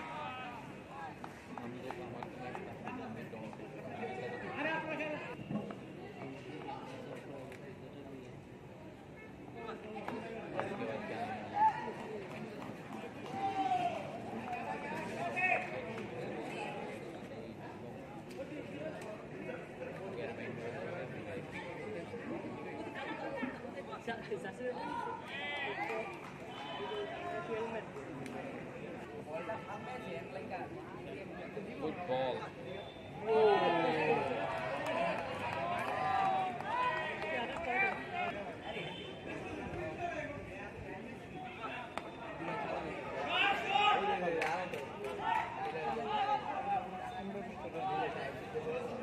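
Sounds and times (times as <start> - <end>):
people shouting and talking: 0.0 - 49.0.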